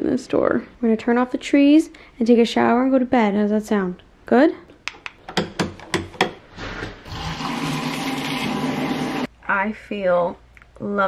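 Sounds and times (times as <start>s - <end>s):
shower running: 7.1s - 9.3s.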